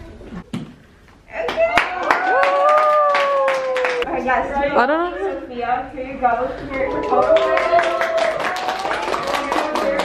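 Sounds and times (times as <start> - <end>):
woman cheering: 1.3 - 4.1
small group clapping: 1.4 - 4.1, 6.6 - 10.0.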